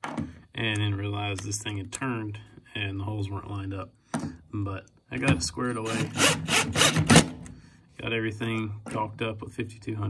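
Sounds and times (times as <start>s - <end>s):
cordless drill driving screw: 5.8s - 7.4s.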